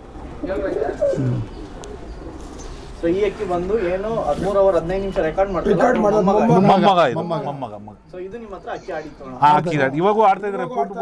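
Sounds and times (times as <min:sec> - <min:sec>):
pigeon cooing: 0:00.2 - 0:03.0.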